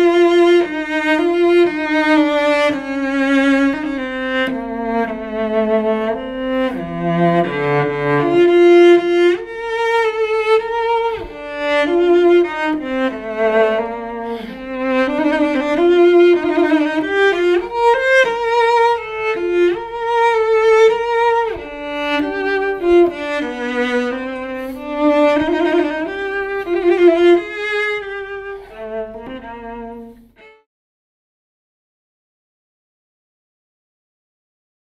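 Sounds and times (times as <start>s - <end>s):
bowed cello melody: 0.0s - 30.7s.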